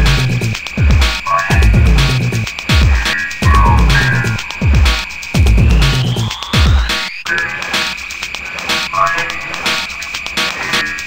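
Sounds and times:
drum and bass percussion: 0.0s - 11.0s
high held synth tone: 1.2s - 7.5s, 8.9s - 10.1s
short pitched synth notes: 3.0s - 5.8s.

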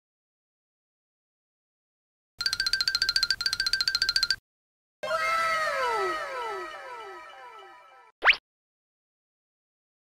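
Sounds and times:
cartoon falling whistle glide: 5.0s - 8.4s.

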